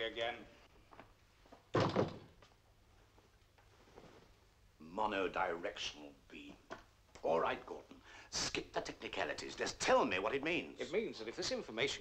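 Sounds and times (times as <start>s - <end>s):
wooden door shutting: 1.7s - 2.4s.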